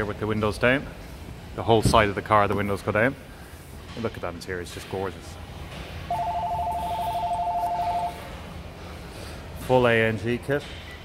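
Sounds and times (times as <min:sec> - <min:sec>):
electronic two-tone trilling ring: 0:06.1 - 0:08.2.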